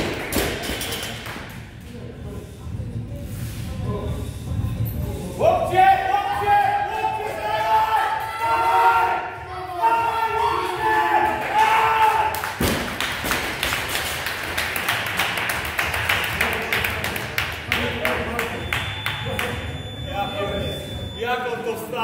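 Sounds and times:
applause and cheering: 0:11.2 - 0:18.2.

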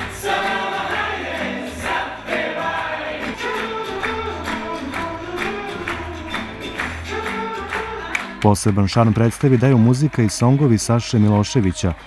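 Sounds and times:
people singing together: 0:00.0 - 0:12.0.

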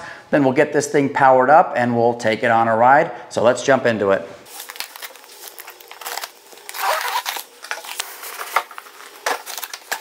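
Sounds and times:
cardboard rustling and scraping: 0:04.5 - 0:10.0
packing tape tearing: 0:04.5 - 0:10.0.

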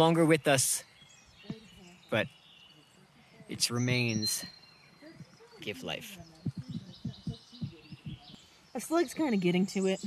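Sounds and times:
small birds chirping: 0:00.0 - 0:10.0
soft low thumps: 0:03.3 - 0:08.5.

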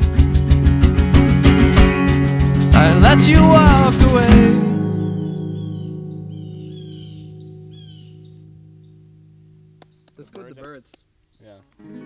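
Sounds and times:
acoustic guitar chord ringing: 0:00.0 - 0:09.8, 0:11.8 - 0:12.0
small bird chirping: 0:04.5 - 0:11.8.

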